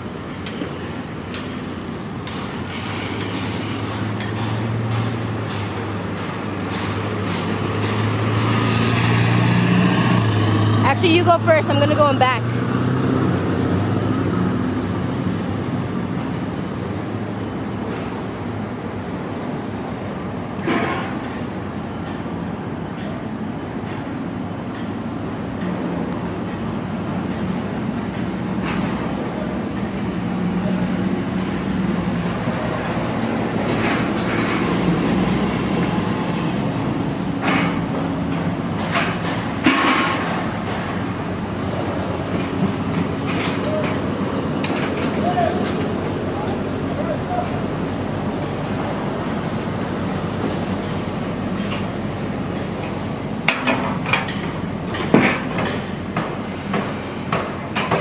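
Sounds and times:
heavy engines and street traffic: 0.0s - 58.0s.

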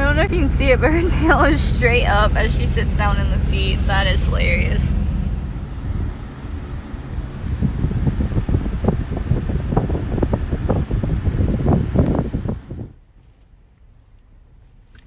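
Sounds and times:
low rumble: 0.0s - 15.0s
crackling rustling on microphone: 5.3s - 15.0s.

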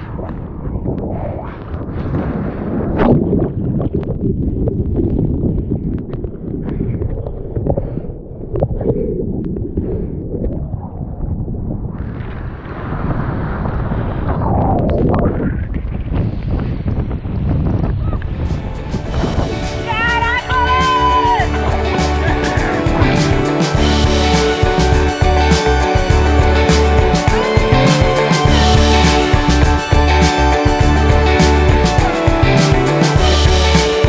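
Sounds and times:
wind on microphone: 0.0s - 28.2s.

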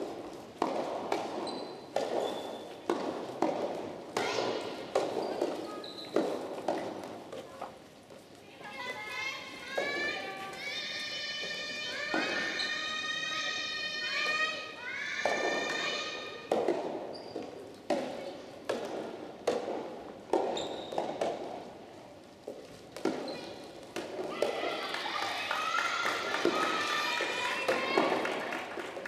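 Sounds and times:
tennis ball strikes and bounces: 0.0s - 7.3s, 16.5s - 21.7s, 22.5s - 24.8s.

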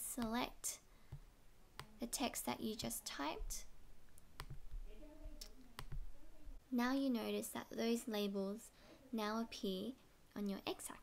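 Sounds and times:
computer mouse clicks: 4.1s - 4.8s.

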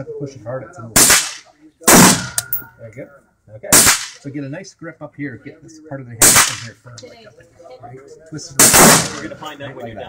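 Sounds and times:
gunshots: 1.0s - 2.6s, 3.7s - 4.2s, 6.2s - 6.8s, 8.6s - 9.4s.

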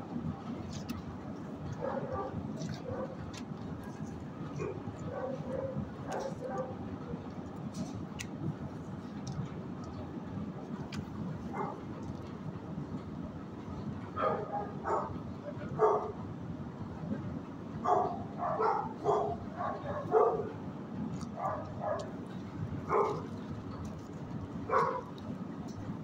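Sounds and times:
dogs barking: 1.7s - 7.9s, 11.5s - 11.9s, 14.2s - 16.2s, 17.8s - 20.6s, 21.2s - 23.4s, 24.6s - 25.2s.

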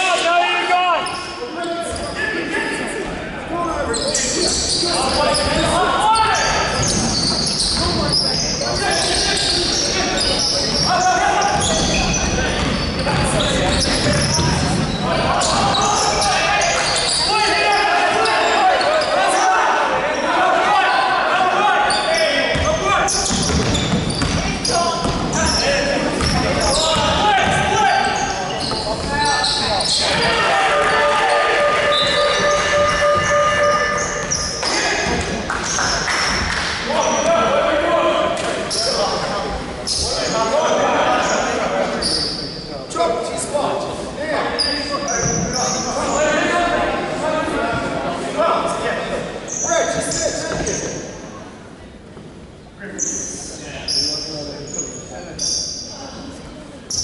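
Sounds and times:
basketball bouncing on court: 11.4s - 15.0s, 22.5s - 25.6s, 26.2s - 27.8s
indistinct shouting: 30.0s - 35.1s
held pitched tone: 30.4s - 34.6s.

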